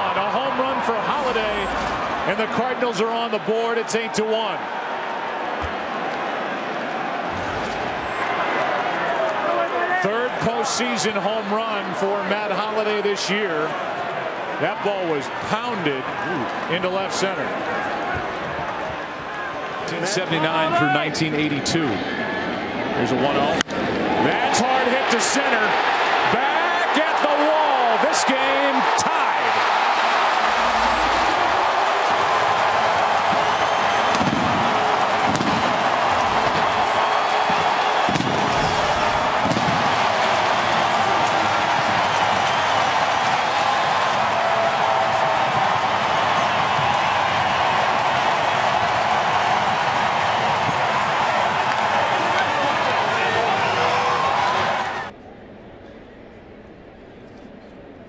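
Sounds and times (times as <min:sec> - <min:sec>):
stadium crowd cheering: 0:00.0 - 0:55.2
fireworks booming: 0:38.1 - 0:40.8.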